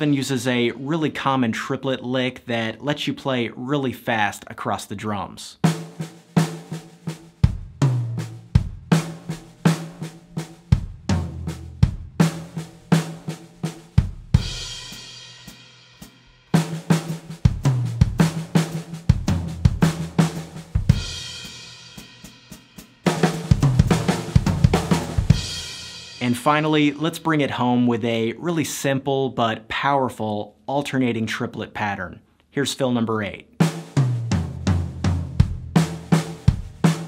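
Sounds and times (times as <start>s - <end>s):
drum kit fill on snare and toms: 5.6s - 27.5s, 33.6s - 37.0s.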